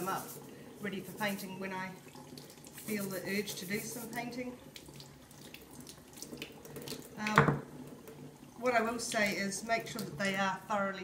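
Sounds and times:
tap water splashing into sink: 0:01.8 - 0:10.5.

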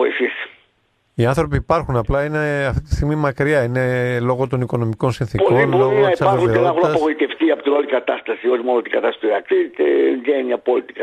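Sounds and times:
person speaking over telephone line: 0:05.4 - 0:11.0.

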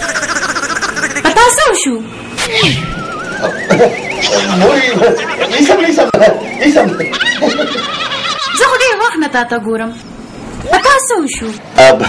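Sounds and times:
people speaking: 0:01.2 - 0:02.8, 0:03.7 - 0:07.9, 0:08.6 - 0:10.0
high wavering whinny-like call: 0:02.5 - 0:08.8.

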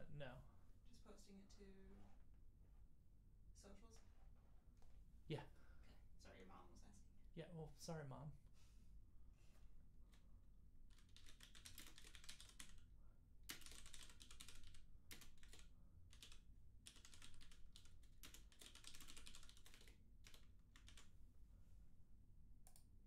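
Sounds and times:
typing on computer keyboard: 0:10.9 - 0:12.9, 0:13.5 - 0:21.1.

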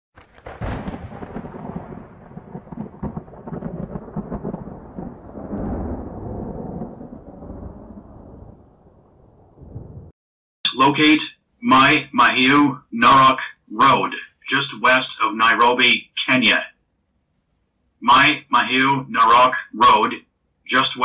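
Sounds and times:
crackling rolling rumble: 0:00.2 - 0:10.1
sharp thunder crack: 0:00.2 - 0:10.1.

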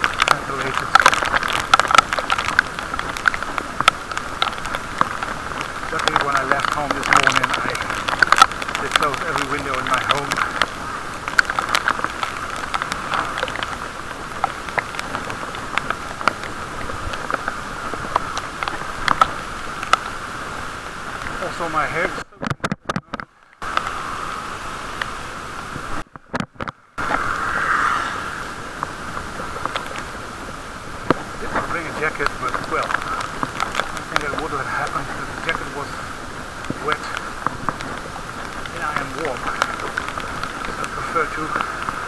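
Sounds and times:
small ticks: 0:00.0 - 0:20.1, 0:31.0 - 0:35.7
muffled bicycle riding noise: 0:00.0 - 0:42.0.

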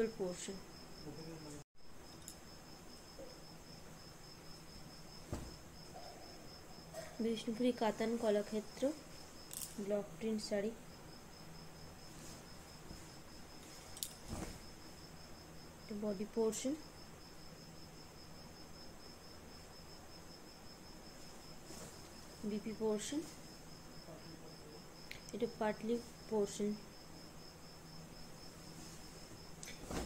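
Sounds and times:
cricket chirping: 0:00.0 - 0:16.0, 0:16.6 - 0:30.0
dull thump: 0:05.2 - 0:05.7.

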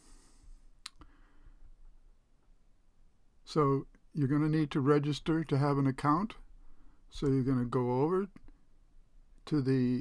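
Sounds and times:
faint click: 0:00.8 - 0:01.1.

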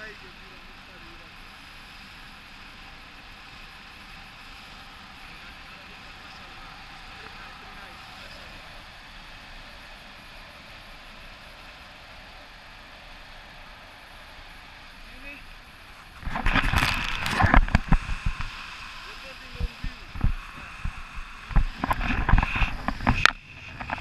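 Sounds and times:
wind buffeting and rustling: 0:00.0 - 0:24.0
wind rushing past microphone: 0:04.6 - 0:24.0.

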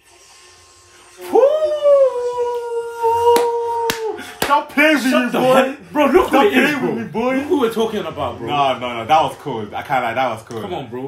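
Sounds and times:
man howling: 0:01.2 - 0:04.4.

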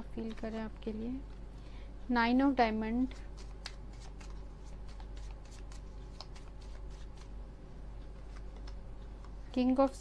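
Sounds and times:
playing cards shuffled: 0:03.2 - 0:07.3.

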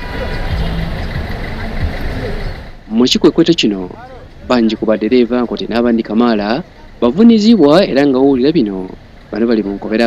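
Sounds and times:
crowd voices: 0:00.0 - 0:10.0
vehicle engine running low: 0:00.0 - 0:10.0.

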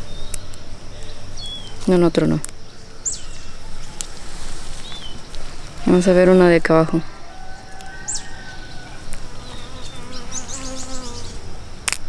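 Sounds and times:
flying insect buzzing: 0:07.5 - 0:11.5.

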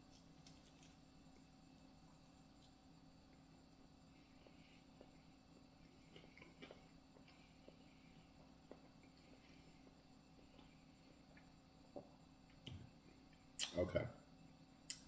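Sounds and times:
faint room hum: 0:00.0 - 0:15.0
person chewing crunchy food: 0:04.3 - 0:12.6.

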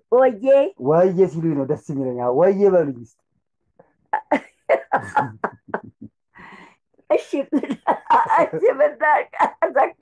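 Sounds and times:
elderly woman laughing: 0:04.2 - 0:06.1, 0:07.4 - 0:09.8.

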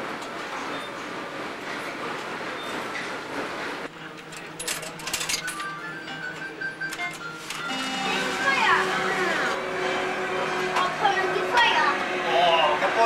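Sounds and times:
indistinct hubbub: 0:00.6 - 0:13.0
slot machine electronic tones: 0:05.2 - 0:08.7.

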